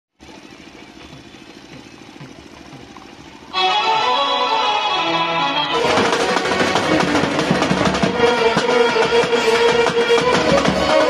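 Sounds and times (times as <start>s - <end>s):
brass band playing: 3.5s - 11.0s.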